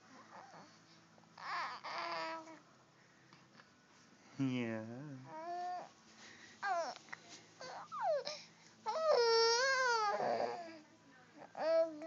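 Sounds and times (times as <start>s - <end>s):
baby cooing: 1.4s - 2.6s, 6.6s - 7.0s, 7.6s - 10.8s, 11.4s - 12.0s.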